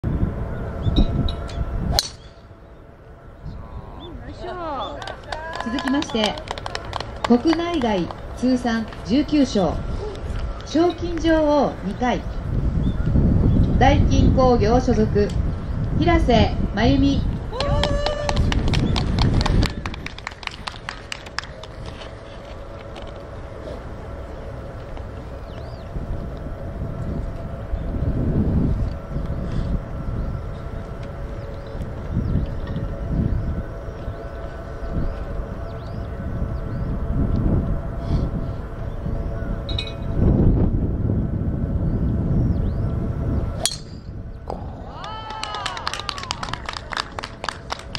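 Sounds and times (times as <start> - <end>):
wind on microphone: 0.0 - 47.9
golf driver striking ball: 1.9 - 2.3
scattered applause: 4.9 - 9.0, 17.5 - 21.8, 44.9 - 47.9.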